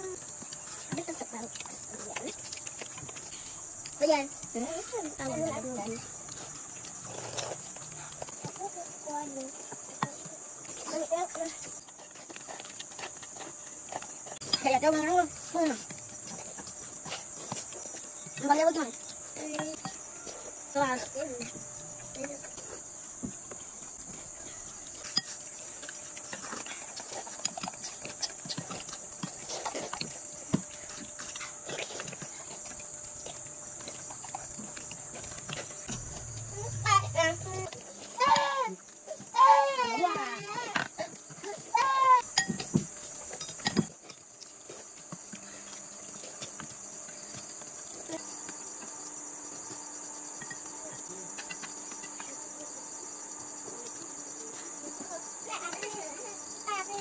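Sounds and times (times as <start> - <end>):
chewing: 0.0 - 49.8
crickets chirring: 0.0 - 57.0.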